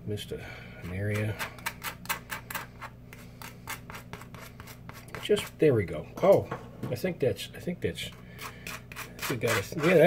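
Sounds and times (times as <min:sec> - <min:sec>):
knife scraping dry toast: 0:01.1 - 0:05.6, 0:08.3 - 0:10.0.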